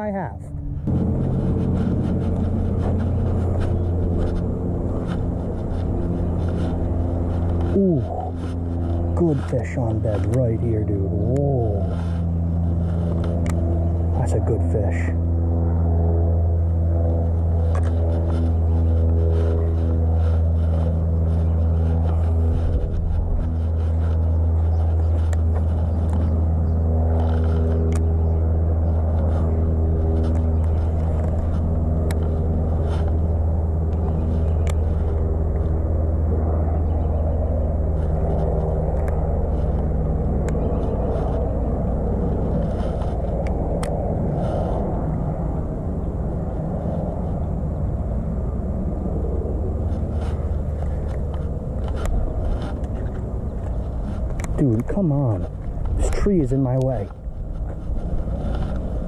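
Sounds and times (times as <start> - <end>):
low engine hum: 0.0 - 59.0.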